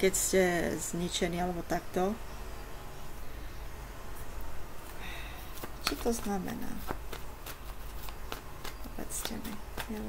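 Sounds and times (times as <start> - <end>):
cards being shuffled: 4.8 - 10.0.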